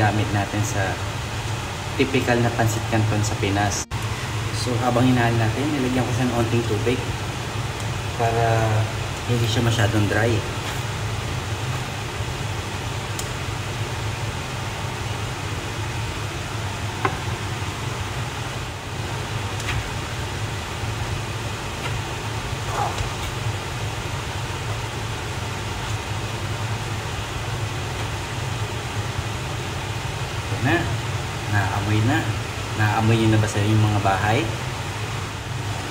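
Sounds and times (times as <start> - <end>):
low fan hum: 0.0 - 35.9.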